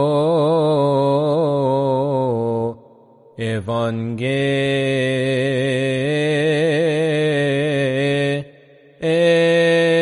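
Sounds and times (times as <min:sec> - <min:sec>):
man chanting: 0:00.0 - 0:10.0.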